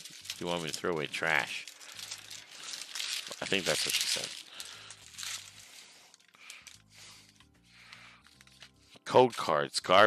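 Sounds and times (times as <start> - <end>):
faint background music: 0.0 - 10.0
foil wrapper rustling: 0.0 - 10.0.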